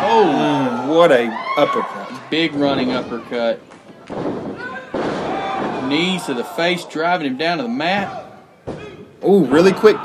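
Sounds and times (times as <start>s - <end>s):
crowd noise in hall: 0.0s - 10.0s
body thudding on ring mat: 4.1s - 6.1s.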